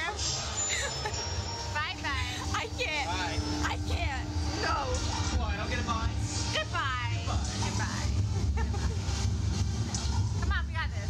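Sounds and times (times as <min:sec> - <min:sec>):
low rumble: 0:01.9 - 0:11.0.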